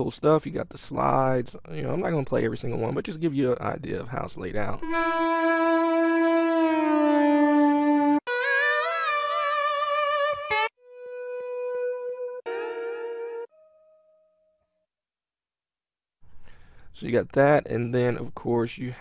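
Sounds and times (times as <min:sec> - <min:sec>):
slide guitar notes: 0:04.8 - 0:14.3.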